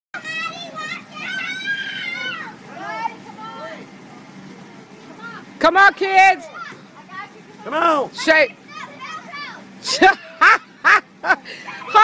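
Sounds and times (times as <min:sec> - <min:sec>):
child's long held call: 0:00.2 - 0:03.0
children shouting and squealing: 0:00.2 - 0:04.0, 0:06.4 - 0:12.0.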